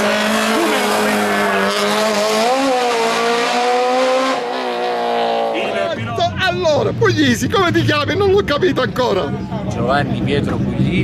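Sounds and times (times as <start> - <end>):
race car engine revving high: 0.0 - 6.0.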